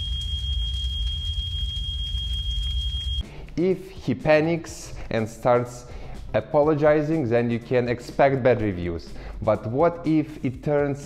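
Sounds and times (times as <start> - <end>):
fire rumble with crackle: 0.0 - 3.2.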